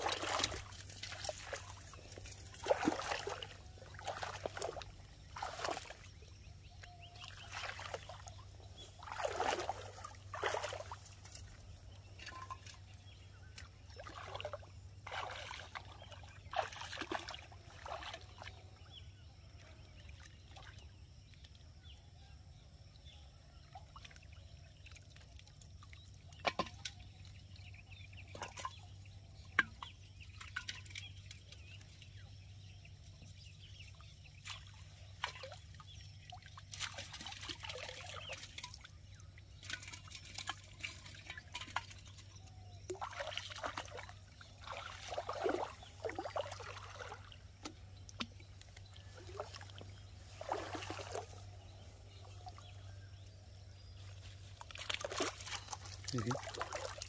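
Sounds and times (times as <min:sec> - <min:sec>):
water splashing: 0:00.0 - 0:06.4, 0:07.0 - 0:12.8, 0:13.9 - 0:18.6, 0:34.4 - 0:52.8, 0:54.0 - 0:57.0.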